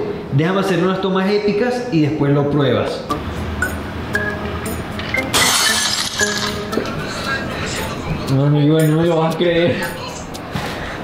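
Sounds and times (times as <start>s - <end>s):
background music: 3.1s - 11.0s
glass shattering sound effect: 5.2s - 6.6s.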